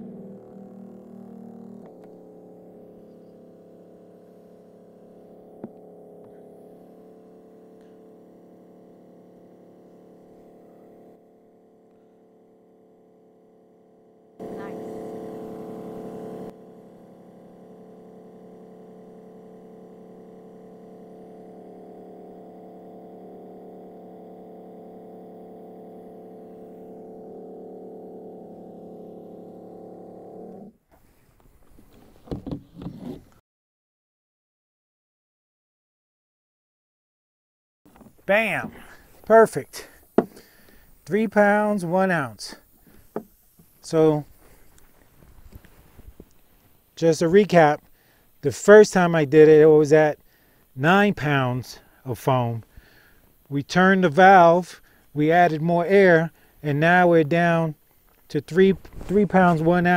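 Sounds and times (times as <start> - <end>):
electric pump hum: 0.0 - 33.4, 37.9 - 59.9.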